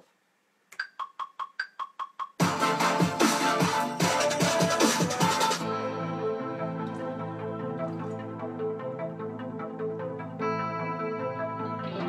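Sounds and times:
electronic bass music: 2.4s - 12.0s.

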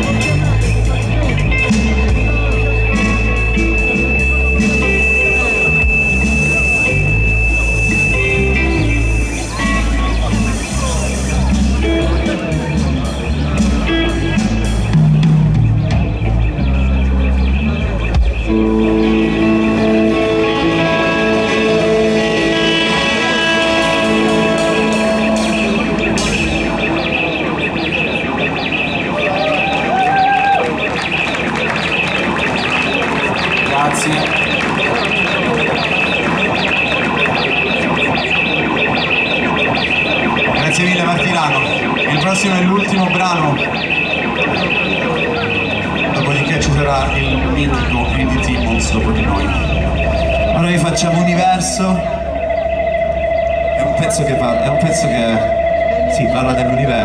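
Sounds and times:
low bass drone: 0.0s - 29.4s, 30.8s - 57.0s
distorted electric guitar feedback drones: 0.0s - 57.0s.

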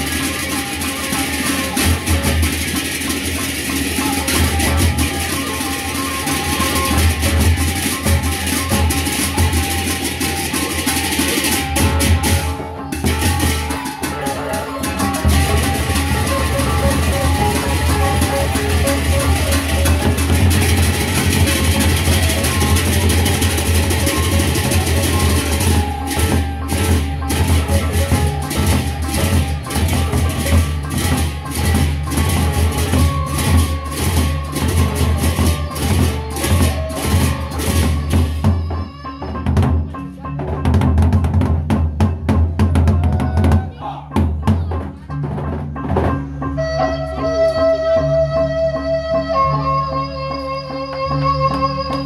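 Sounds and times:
reed pipe melody: 0.0s - 41.5s, 42.7s - 52.0s
large drums beaten fast: 0.0s - 46.3s.

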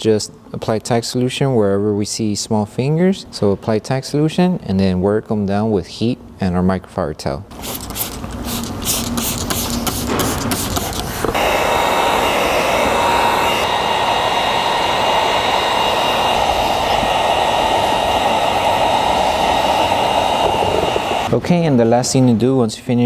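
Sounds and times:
spray bottle squirting: 7.5s - 11.5s
heat gun blowing air: 7.5s - 21.4s.

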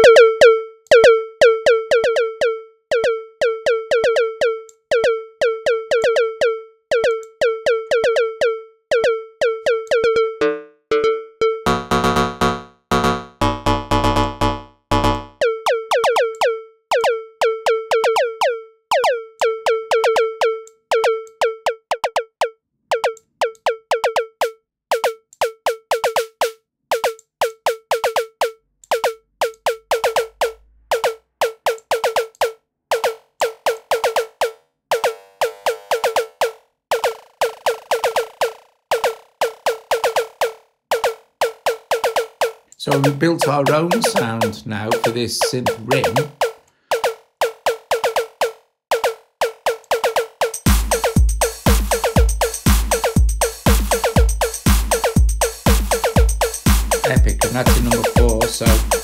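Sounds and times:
noisy synth drum: 11.7s - 16.0s, 50.7s - 59.0s.

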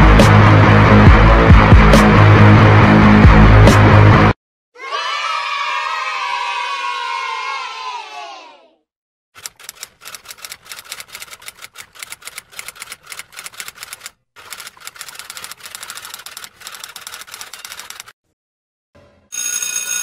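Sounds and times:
crowd cheering: 4.8s - 8.7s
typewriter typing: 9.4s - 18.2s.

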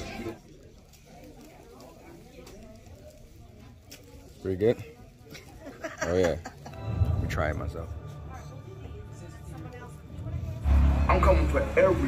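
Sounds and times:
loud deep rumble: 10.2s - 12.0s.

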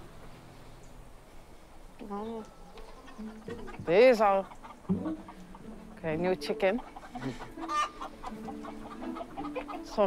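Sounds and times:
faint low rumble and hiss: 0.0s - 6.5s.

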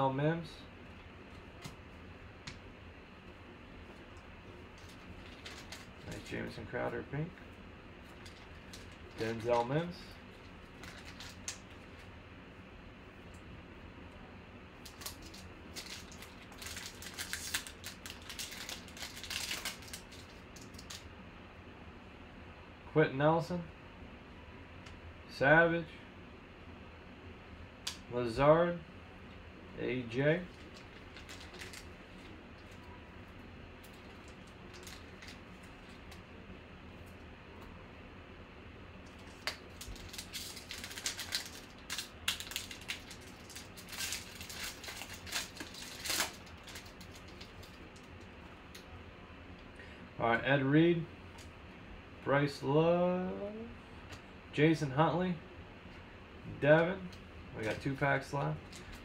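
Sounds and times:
foil wrapper crinkling: 4.7s - 6.5s, 8.0s - 12.1s, 14.8s - 21.1s, 30.5s - 32.9s, 33.8s - 36.2s, 39.1s - 48.3s.

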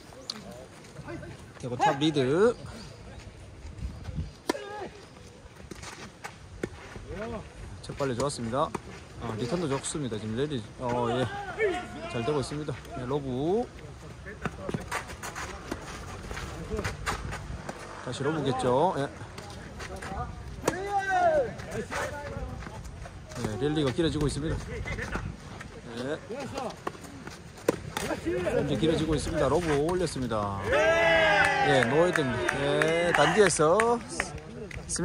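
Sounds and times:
voices: 0.0s - 5.8s, 7.0s - 35.0s.

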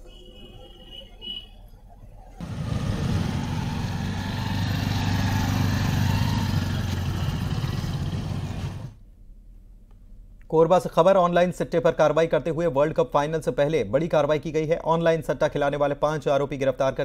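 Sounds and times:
vehicle engine running: 2.4s - 9.0s.

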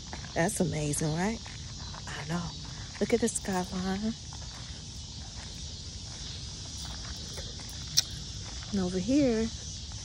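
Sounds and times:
cicadas chorus: 0.0s - 10.0s.

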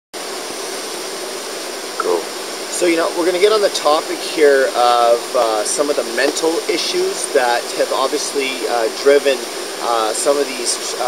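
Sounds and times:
water fountain splashing: 2.0s - 11.0s.

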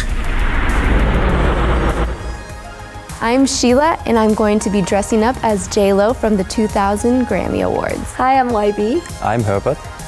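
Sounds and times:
heavy low rumble: 0.0s - 4.6s.

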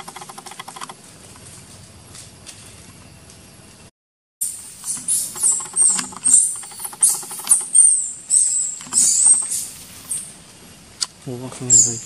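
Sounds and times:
baby monkey screaming: 4.8s - 10.2s, 11.7s - 12.0s.

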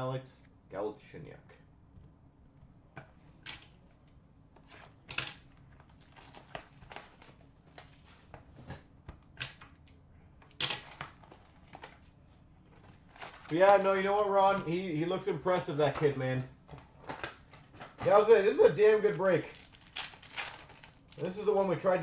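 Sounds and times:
trading cards clicking and rustling: 4.6s - 12.1s, 12.7s - 22.0s.

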